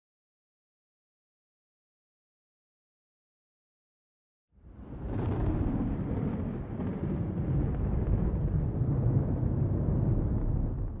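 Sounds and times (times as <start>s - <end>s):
deep rumbling: 4.7s - 11.0s.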